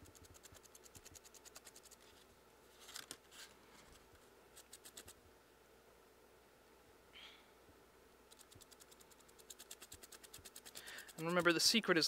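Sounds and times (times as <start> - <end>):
paint brush bristles scratching: 4.6 - 5.2, 8.3 - 12.0.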